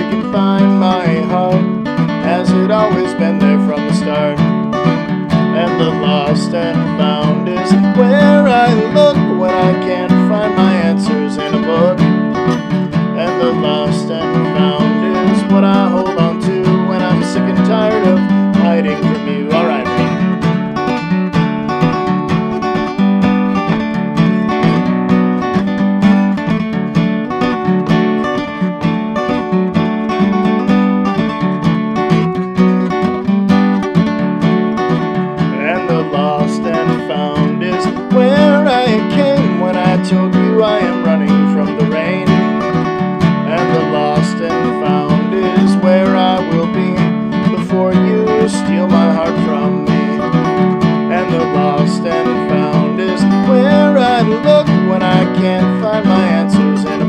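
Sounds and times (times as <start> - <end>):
man singing: 0.0 - 20.6, 35.4 - 57.0
acoustic guitar strumming: 0.0 - 57.0.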